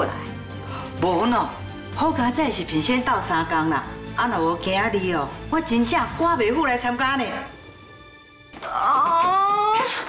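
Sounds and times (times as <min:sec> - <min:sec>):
woman straining wail: 0:08.6 - 0:10.0.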